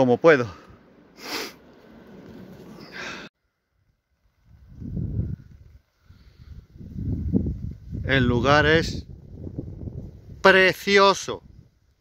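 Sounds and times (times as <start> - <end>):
wind buffeting microphone: 4.2 - 12.0.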